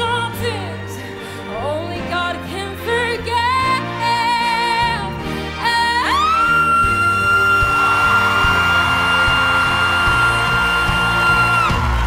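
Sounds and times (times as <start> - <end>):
band accompaniment: 0.0 - 12.0.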